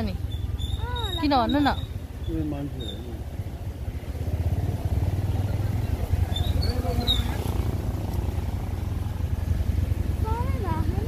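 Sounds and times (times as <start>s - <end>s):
motorcycle engine rumble: 0.0s - 11.0s.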